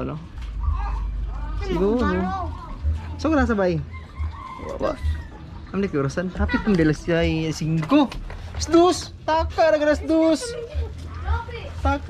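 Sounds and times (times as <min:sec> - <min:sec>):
rooster crowing: 0:03.8 - 0:05.7.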